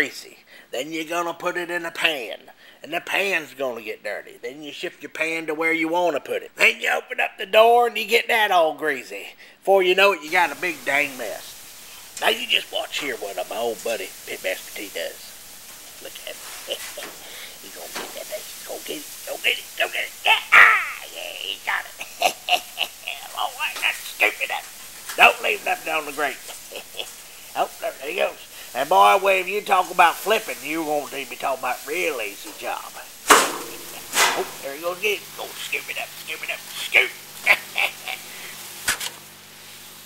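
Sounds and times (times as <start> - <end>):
faint steady hiss: 0.0 - 40.0
man laughing and exclaiming: 16.0 - 33.0, 33.7 - 38.5
paddle knocking on metal grate: 33.2 - 34.6.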